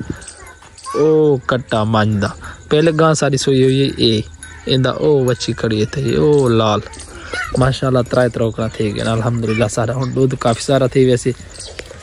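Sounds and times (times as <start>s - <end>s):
man calling out: 0.0s - 11.4s.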